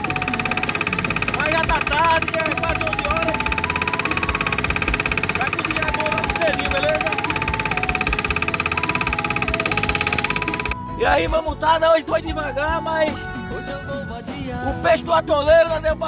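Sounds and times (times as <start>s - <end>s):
small boat engine running: 0.0s - 10.8s.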